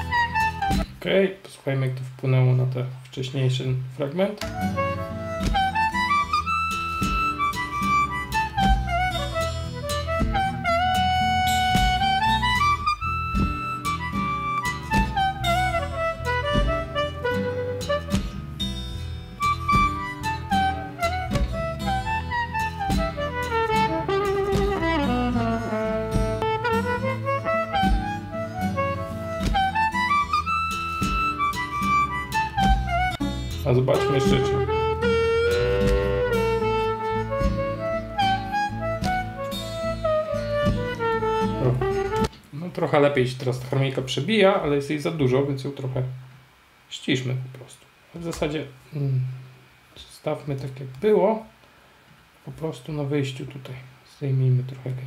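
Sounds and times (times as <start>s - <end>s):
harmonica melody: 0.0s - 0.9s, 4.4s - 42.4s
bass line: 4.4s - 42.3s
drums: 4.5s - 6.1s, 6.7s - 42.5s.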